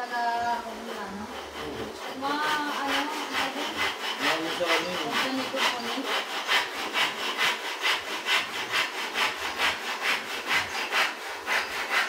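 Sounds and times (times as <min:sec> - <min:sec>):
rhythmic rasping strokes: 0:00.0 - 0:12.0.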